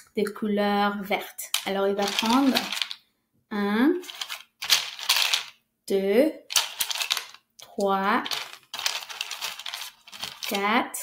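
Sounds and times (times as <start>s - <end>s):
beads clinking in metal bowl: 1.4s - 3.0s, 4.0s - 5.6s, 6.5s - 10.7s.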